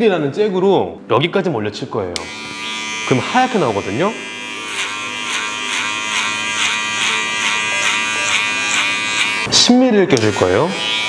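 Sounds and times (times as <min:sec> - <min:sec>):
electric hair clippers buzzing: 0:02.2 - 0:09.5, 0:10.2 - 0:11.0
clipper blade rasping through hair: 0:04.3 - 0:09.5.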